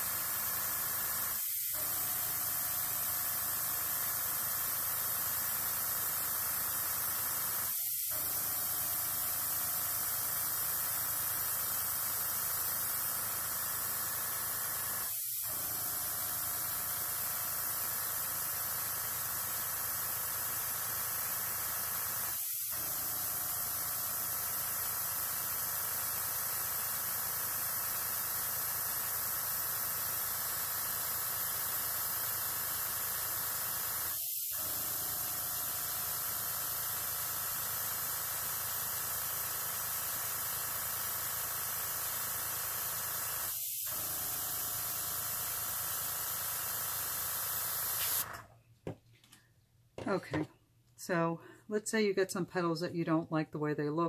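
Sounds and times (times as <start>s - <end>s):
airbrush hissing: 0.0s - 48.2s.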